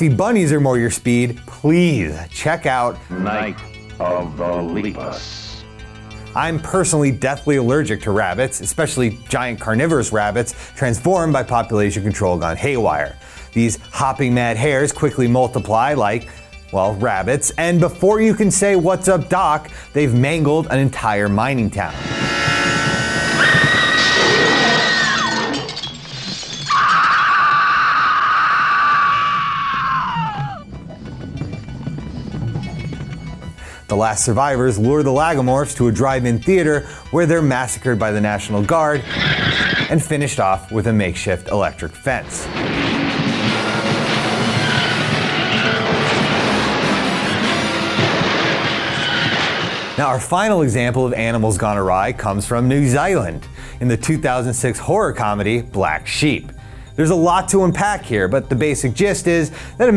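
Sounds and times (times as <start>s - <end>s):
tense horror music: 21.8s - 25.9s, 26.7s - 33.9s, 42.2s - 51.2s
electric sparks crackling and sizzling: 42.2s - 50.5s.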